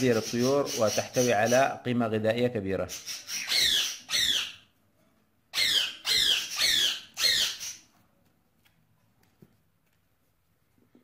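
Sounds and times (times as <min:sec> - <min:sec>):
budgerigars squawking: 0:00.0 - 0:01.8, 0:02.9 - 0:04.6, 0:05.6 - 0:07.8.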